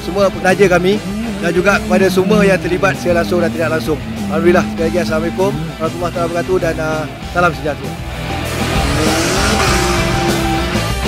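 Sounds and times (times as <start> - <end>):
rally car engine revving: 0.0 - 11.0
rock music: 0.0 - 11.0.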